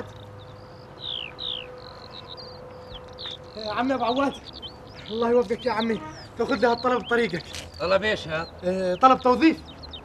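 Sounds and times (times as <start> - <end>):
small bird whistling and chirping: 0.0 - 10.0.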